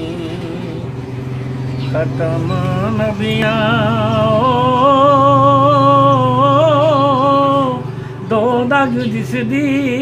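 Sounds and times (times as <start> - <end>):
elderly man chanting: 0.0 - 10.0.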